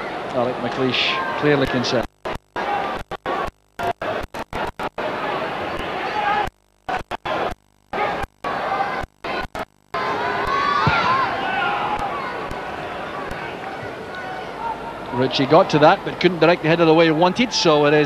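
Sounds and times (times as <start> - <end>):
crowd shouts: 0.0 - 18.0
stadium crowd noise: 0.0 - 18.0.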